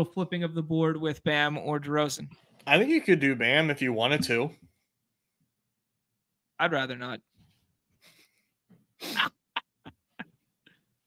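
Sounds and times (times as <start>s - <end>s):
man laughing: 9.0s - 10.4s.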